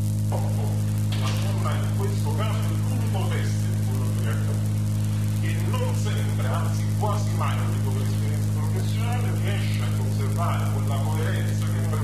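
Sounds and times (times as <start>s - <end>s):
electrical hum: 0.0s - 12.0s
faint indistinct voice: 0.3s - 12.0s.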